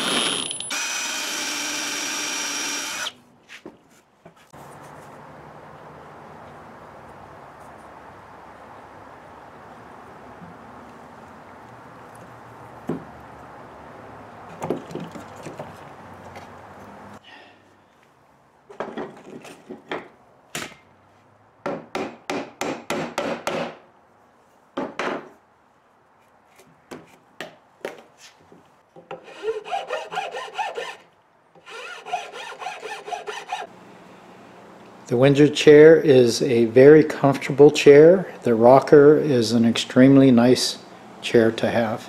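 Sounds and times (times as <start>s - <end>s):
hand tool strokes on wood: 29.2s - 31.0s, 31.6s - 33.7s.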